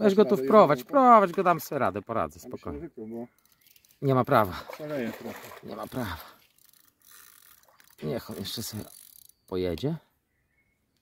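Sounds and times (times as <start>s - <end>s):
fishing reel whirring: 6.4s - 9.5s.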